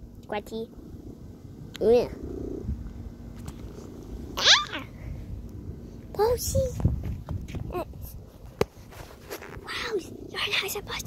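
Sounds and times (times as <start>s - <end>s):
cat purring: 0.6s - 6.3s, 9.3s - 11.0s
cat short high cry: 4.4s - 4.9s.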